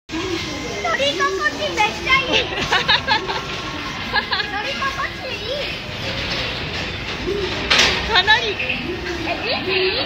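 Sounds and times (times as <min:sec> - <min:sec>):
rattling rumble of conveyor ride: 0:00.1 - 0:10.0
woman laughing: 0:02.5 - 0:03.5.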